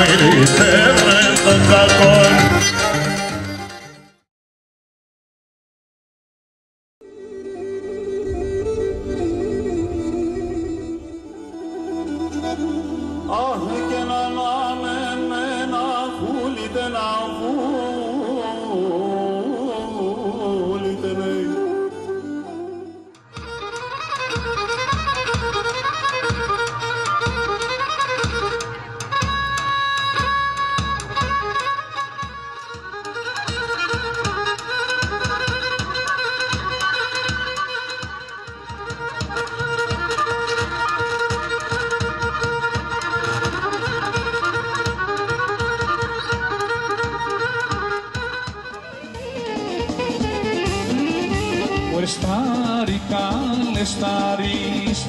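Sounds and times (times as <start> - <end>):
steady drum beat: 44.9 - 55.0.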